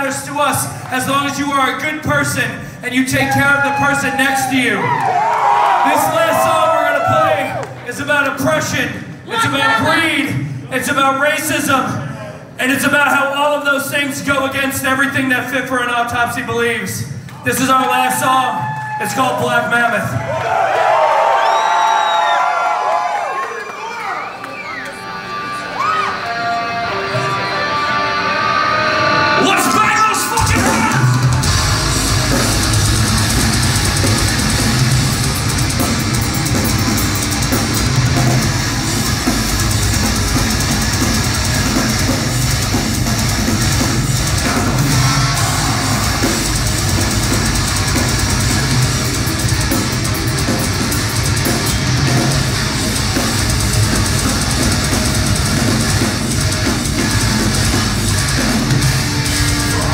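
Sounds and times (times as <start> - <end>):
drums: 0.0 - 23.3, 24.3 - 59.9
electric guitars: 24.4 - 59.9.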